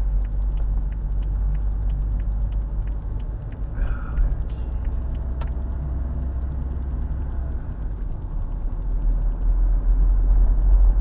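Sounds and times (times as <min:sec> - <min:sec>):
faint irregular ticks: 0:00.0 - 0:07.0
car engine and tyres rumbling: 0:00.0 - 0:11.0.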